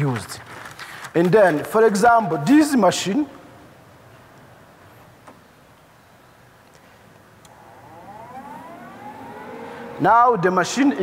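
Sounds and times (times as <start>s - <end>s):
welding machine whine rising: 7.5s - 11.0s.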